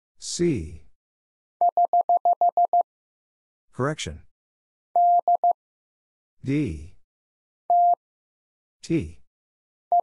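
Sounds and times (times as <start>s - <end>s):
morse code beeps: 1.6s - 2.8s, 5.0s - 5.6s, 7.7s - 8.0s.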